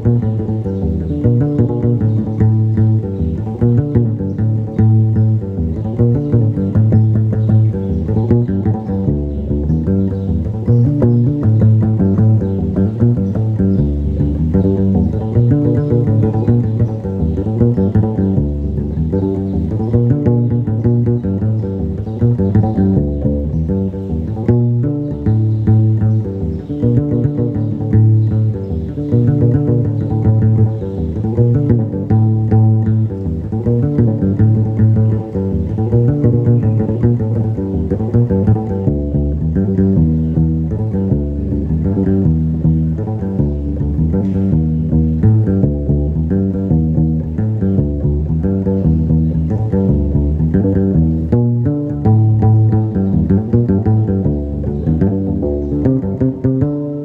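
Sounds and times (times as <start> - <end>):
plucked bass lute riff: 0.0 - 57.0.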